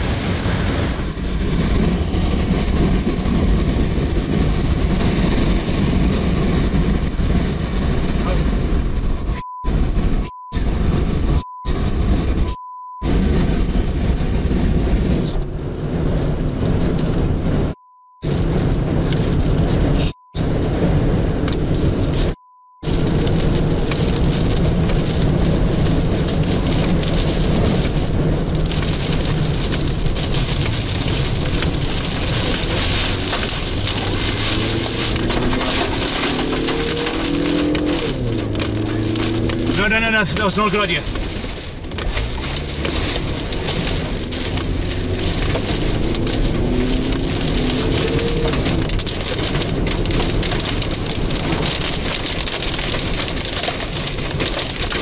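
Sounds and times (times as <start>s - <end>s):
deep rumble: 0.0s - 55.0s
heavy rain on vehicle: 0.0s - 55.0s
wind: 0.0s - 55.0s
short steady beep: 22.4s - 22.8s.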